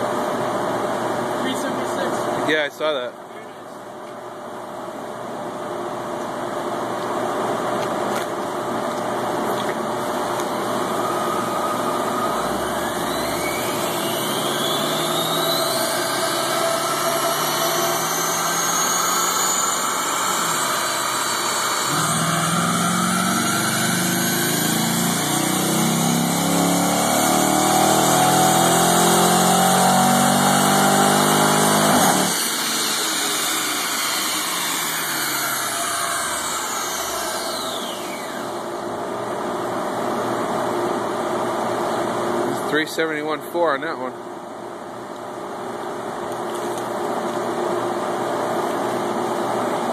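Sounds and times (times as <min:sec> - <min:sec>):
car engine revving on dyno: 0:09.3 - 0:39.0
dyno rollers winding down: 0:10.0 - 0:38.9.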